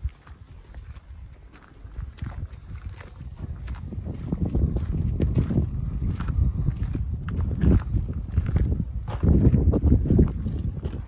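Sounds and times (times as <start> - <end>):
footsteps on dirt trail: 0.0 - 11.0
wind rumbling on microphone: 0.0 - 11.0.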